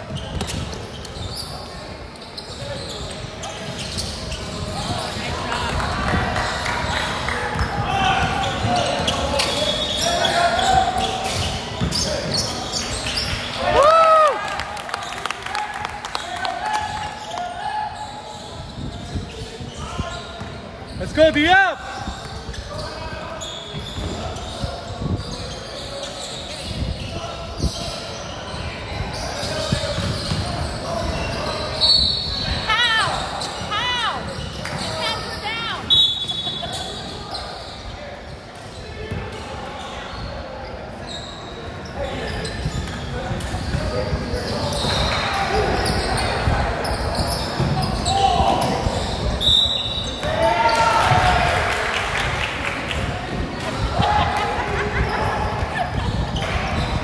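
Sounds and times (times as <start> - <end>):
sneakers squeaking on floor: 0.0 - 13.8, 16.1 - 51.2, 54.6 - 57.0
chatter and calls echoing: 0.0 - 57.0
basketball bouncing: 0.1 - 0.8, 29.9 - 30.6.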